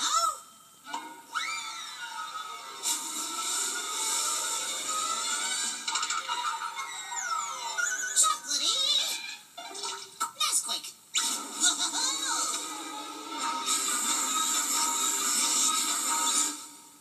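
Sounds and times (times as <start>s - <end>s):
upbeat jingle music: 0.0s - 8.5s
falling whistles: 1.3s - 2.3s.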